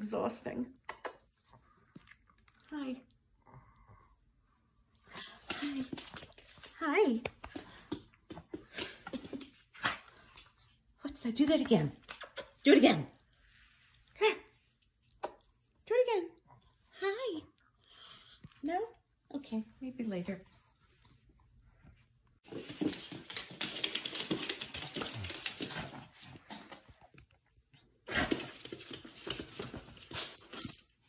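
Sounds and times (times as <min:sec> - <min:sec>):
puppy claws clicking on wood floor: 0:05.1 - 0:09.7, 0:22.5 - 0:26.1, 0:28.2 - 0:30.8.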